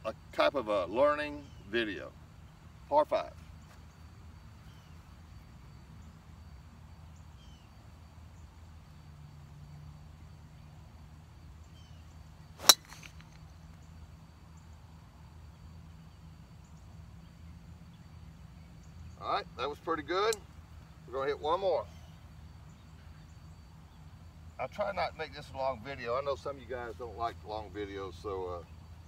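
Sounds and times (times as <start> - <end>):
faint low hum: 0.0 - 29.0
golf club striking ball: 12.6 - 13.5.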